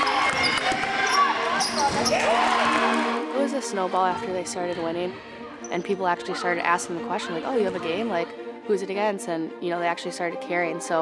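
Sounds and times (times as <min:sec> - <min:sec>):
sneaker squeaks: 0:00.0 - 0:02.3, 0:05.6 - 0:05.9
players' voices: 0:00.0 - 0:11.0.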